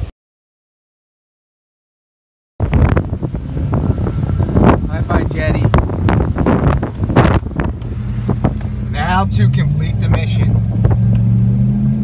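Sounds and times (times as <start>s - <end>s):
wind buffeting microphone: 2.6s - 12.0s.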